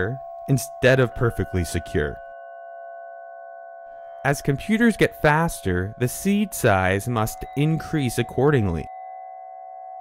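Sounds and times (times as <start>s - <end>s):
soft held synth chord: 0.0s - 10.0s.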